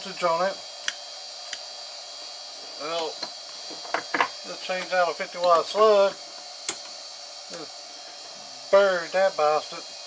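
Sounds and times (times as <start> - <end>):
electrical hum and hiss: 0.0 - 10.0
power supply whine: 0.0 - 10.0.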